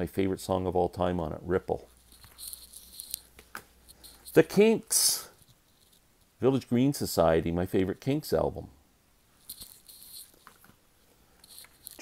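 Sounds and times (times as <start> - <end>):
cd cases rustling and clicking: 2.0 - 4.2.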